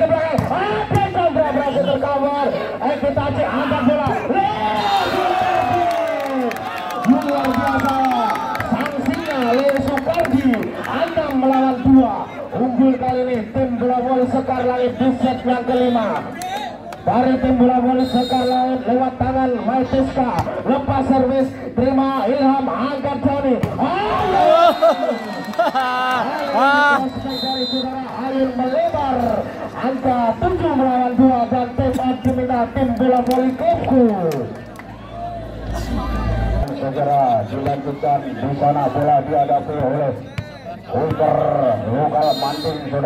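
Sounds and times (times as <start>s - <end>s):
commentator calling play: 0.0s - 25.3s, 26.2s - 34.5s, 35.9s - 43.0s
crowd noise: 0.0s - 43.0s
man calling out excitedly: 26.5s - 27.9s.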